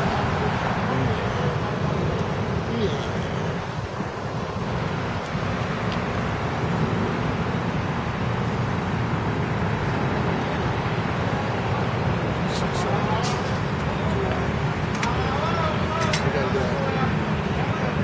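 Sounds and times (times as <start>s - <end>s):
low outdoor rumble: 0.0s - 18.0s.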